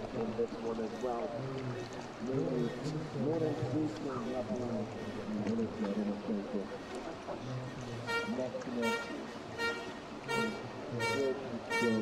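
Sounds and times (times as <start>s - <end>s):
horn tooting rhythmically: 8.0s - 12.0s.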